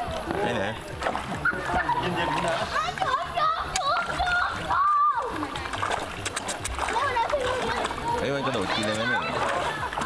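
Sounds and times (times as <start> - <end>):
fish splashing at water surface: 0.0 - 10.0.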